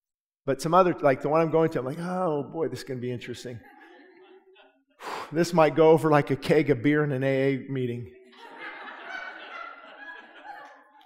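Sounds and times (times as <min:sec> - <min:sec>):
congregation laughing: 0:02.0 - 0:05.2, 0:08.3 - 0:11.0.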